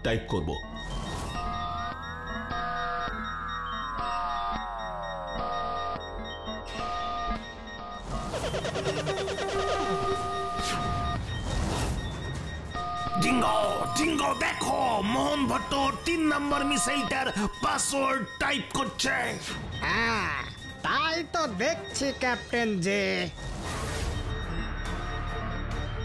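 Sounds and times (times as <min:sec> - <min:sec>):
background music: 0:00.0 - 0:26.0
two-pitch electronic beeps: 0:00.6 - 0:26.0
pulsing electronic texture: 0:00.7 - 0:25.7
synthesized tones sliding downward: 0:01.4 - 0:11.2.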